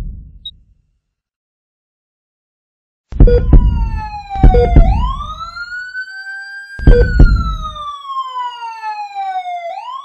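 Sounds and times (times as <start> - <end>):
siren wailing: 3.2 - 10.0.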